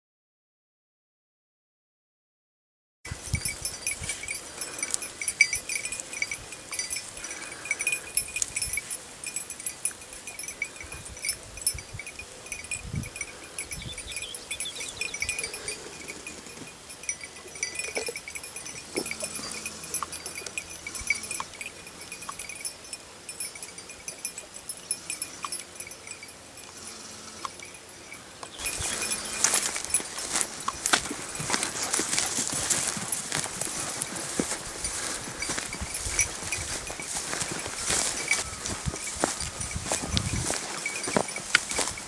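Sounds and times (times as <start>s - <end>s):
small bells jingling: 3.1s - 42.0s.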